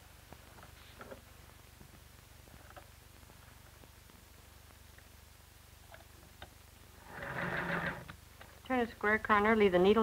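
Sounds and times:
sewing machine stitching: 7.0s - 8.2s.

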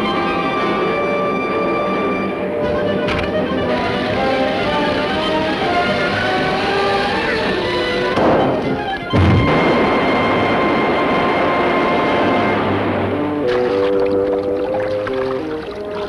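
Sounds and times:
orchestral cartoon music: 0.0s - 16.0s
rushing sloshing water: 0.0s - 16.0s
heavy water splash: 7.3s - 16.0s.

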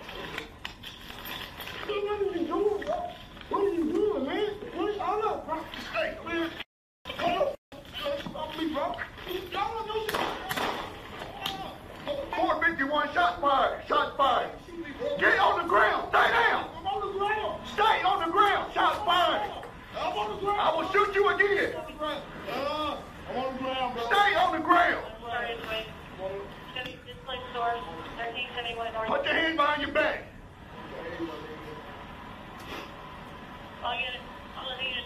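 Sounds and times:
shouted commands: 9.6s - 21.8s
handgun shots: 10.1s - 11.0s.

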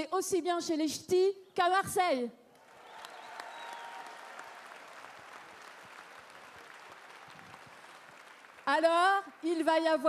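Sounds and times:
audience applauding: 2.6s - 9.7s.

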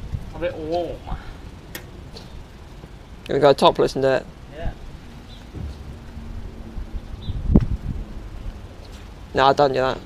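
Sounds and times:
wind rumbling on microphone: 0.0s - 1.3s, 4.6s - 9.3s.

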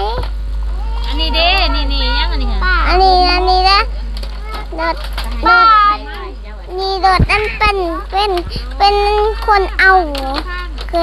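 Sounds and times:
steady low hum: 0.0s - 11.0s
woman talking: 1.1s - 3.0s, 4.9s - 11.0s
child's quiet voice: 2.5s - 11.0s.

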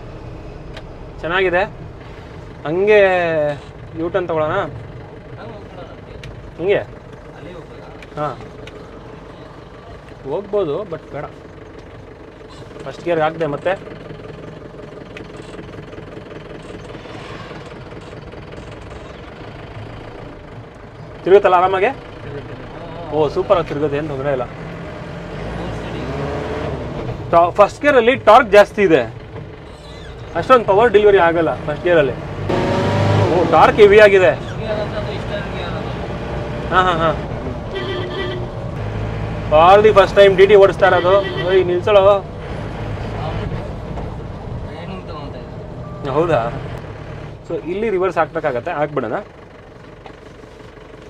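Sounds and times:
diesel van engine drone: 0.0s - 51.0s
road noise: 0.0s - 51.0s.

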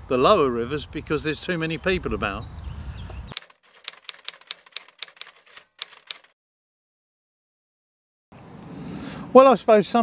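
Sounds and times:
typewriter key clicks: 3.4s - 6.3s.

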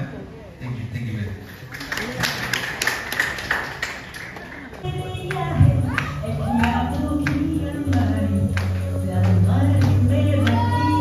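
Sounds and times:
audience clapping: 1.6s - 10.7s.

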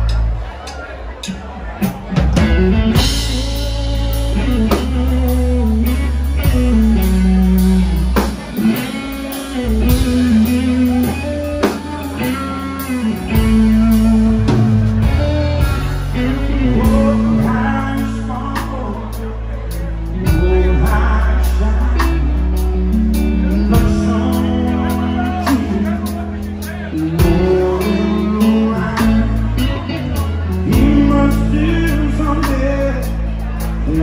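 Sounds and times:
drum kit: 0.0s - 34.0s
keyboard: 0.0s - 34.0s
electric guitar: 1.8s - 34.0s.

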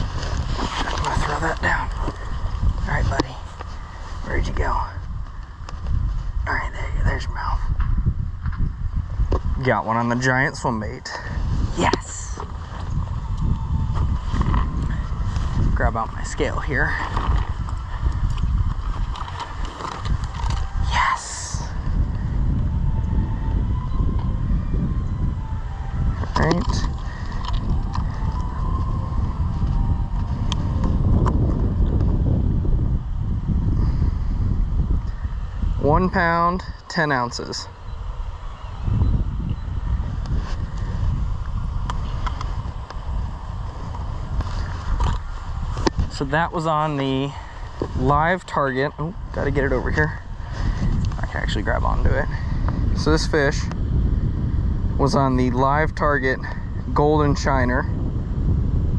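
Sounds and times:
wind buffeting microphone: 0.0s - 58.9s.

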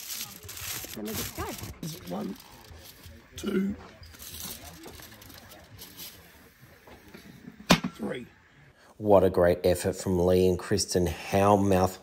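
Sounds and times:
low voices: 0.0s - 9.2s.

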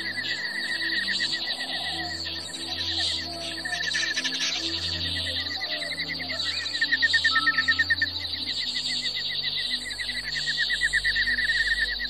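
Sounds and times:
high insect-like buzz: 0.0s - 12.0s
slow ambient music: 0.0s - 12.0s.

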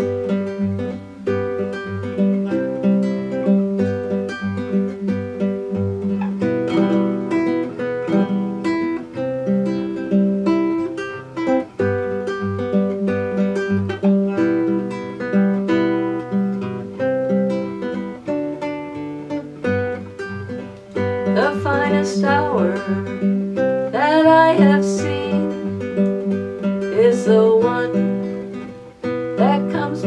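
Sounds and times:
classical guitar playing: 0.0s - 30.0s.

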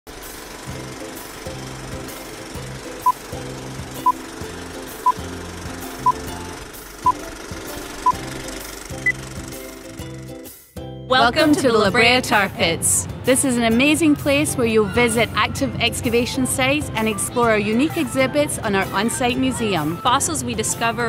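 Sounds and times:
steady mechanical clatter: 0.1s - 10.2s
countdown beeps: 5.0s - 5.2s, 6.0s - 6.2s.

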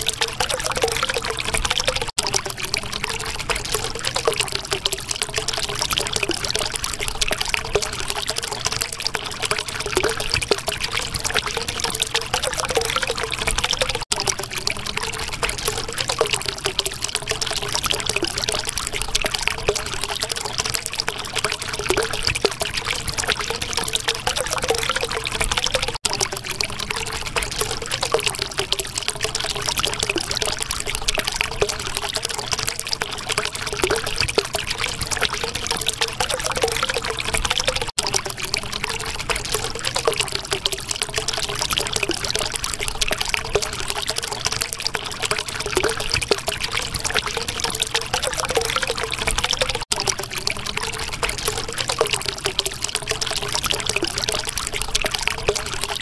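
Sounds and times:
water bubbling: 0.0s - 56.0s
water trickling and pouring: 0.0s - 56.0s.

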